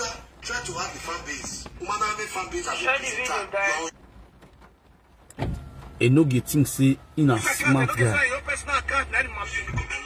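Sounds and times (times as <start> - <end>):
faint low car cabin noise: 0.0 - 10.0
low thump and rumble: 4.0 - 6.0.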